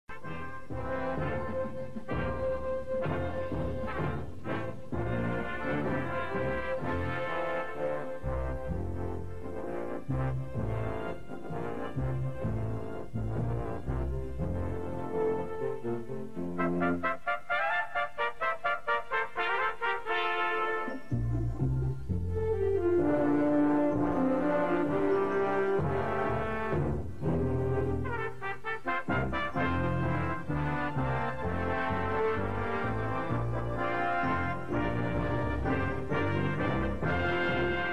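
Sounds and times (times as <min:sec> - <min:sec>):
brass sustained chords: 0:00.1 - 0:37.9.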